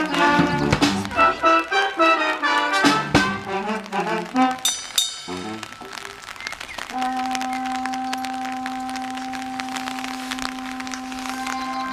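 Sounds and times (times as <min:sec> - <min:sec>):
wind instrument long note: 0:00.0 - 0:04.7, 0:05.3 - 0:06.0, 0:06.8 - 0:11.9.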